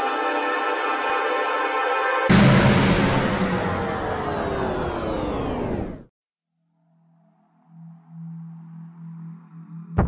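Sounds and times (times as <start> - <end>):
cinematic hit with sliding tones: 2.3 - 6.1.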